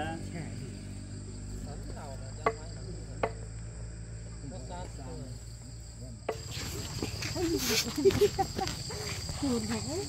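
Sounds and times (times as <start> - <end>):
crickets chirring: 0.0 - 10.0
distant voices: 0.0 - 10.0.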